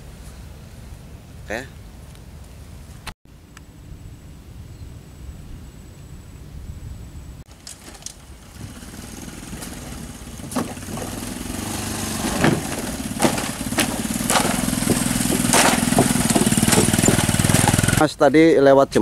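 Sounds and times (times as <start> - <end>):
small motorcycle engine: 7.5 - 18.0
wooden planks knocking: 9.6 - 11.4, 12.2 - 18.0.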